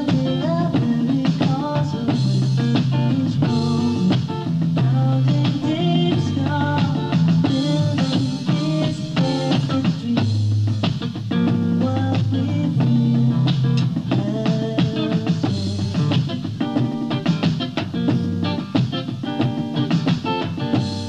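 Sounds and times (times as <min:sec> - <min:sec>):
drum kit beat: 0:00.0 - 0:21.0
rock guitar: 0:00.0 - 0:21.0.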